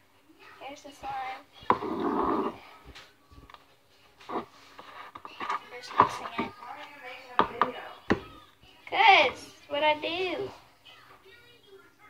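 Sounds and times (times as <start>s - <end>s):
spoon stirring slime: 4.2s - 9.5s
spoon knocking plastic bowl: 7.4s - 8.3s.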